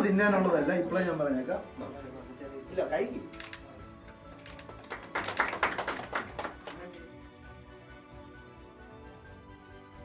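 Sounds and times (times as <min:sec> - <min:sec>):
faint background music: 0:00.0 - 0:10.0
people clapping: 0:03.3 - 0:07.2.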